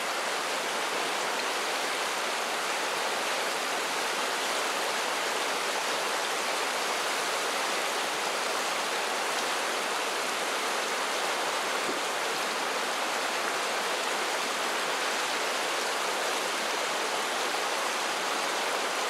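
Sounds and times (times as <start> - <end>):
river rushing over boulders: 0.0 - 19.0.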